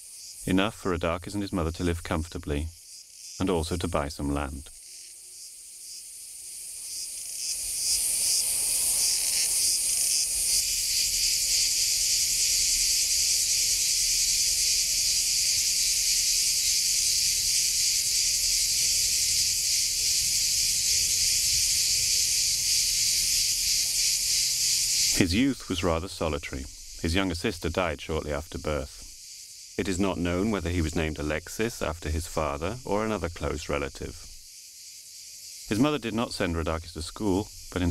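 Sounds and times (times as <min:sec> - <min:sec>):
insects buzzing: 0:00.0 - 0:37.9.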